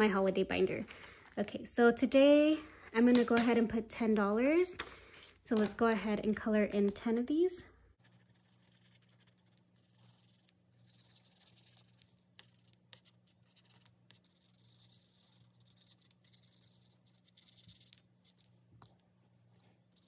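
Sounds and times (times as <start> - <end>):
marker scribbling on paper: 8.0 - 18.6.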